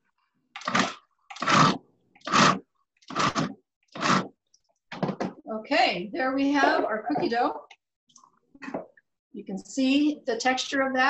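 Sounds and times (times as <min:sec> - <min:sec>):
food processor pulsing: 0:00.6 - 0:04.3.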